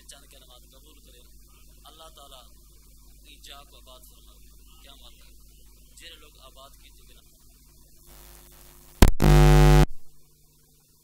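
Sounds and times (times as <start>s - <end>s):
loud electrical buzz: 8.1s - 10.1s.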